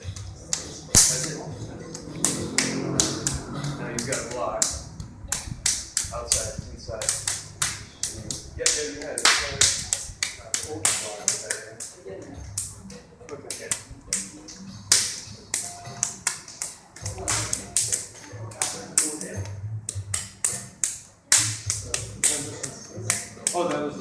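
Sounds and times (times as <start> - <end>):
palms slapping forearms: 0.0 - 23.9.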